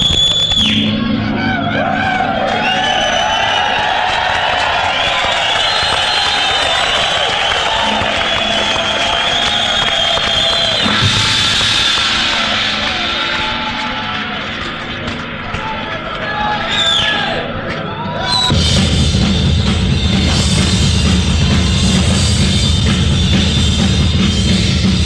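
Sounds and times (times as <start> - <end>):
crowd cheering and yelling: 0.0 - 25.0
sharp loud hit: 10.7 - 14.3.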